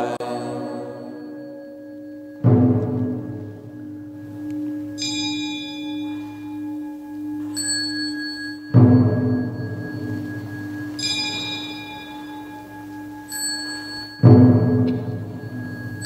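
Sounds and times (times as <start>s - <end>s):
bright metal bell ringing: 0.0s - 16.0s
heavy low bell strike: 0.0s - 16.0s
higher lighter bell strike: 0.0s - 16.0s
low hum of ringing metal: 0.0s - 16.0s.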